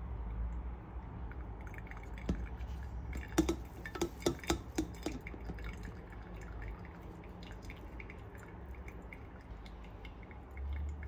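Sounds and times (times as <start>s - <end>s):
coffee dripping: 1.1s - 11.0s.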